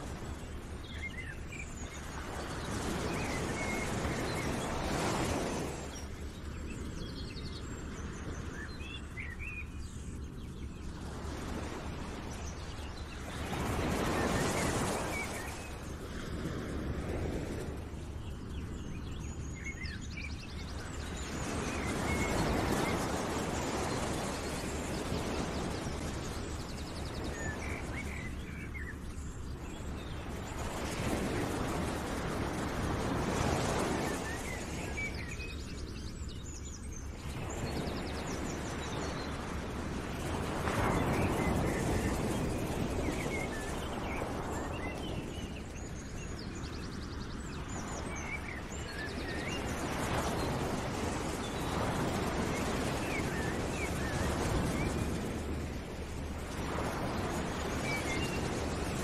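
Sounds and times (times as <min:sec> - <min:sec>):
steady rushing noise: 0:09.8 - 0:59.0.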